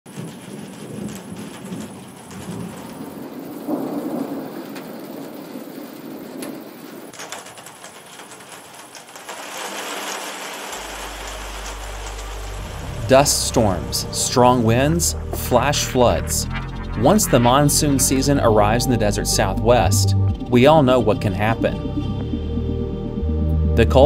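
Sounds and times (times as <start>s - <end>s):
steady rain: 0.1s - 16.4s
thunder rumbling: 0.1s - 24.0s
low steady hum: 10.8s - 24.0s.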